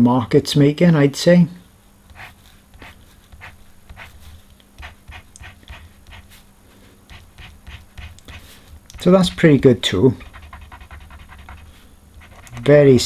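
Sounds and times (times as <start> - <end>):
faint steady hum: 0.0 - 13.0
marker tip scraping paper: 2.1 - 6.4, 7.1 - 9.1, 10.2 - 12.7.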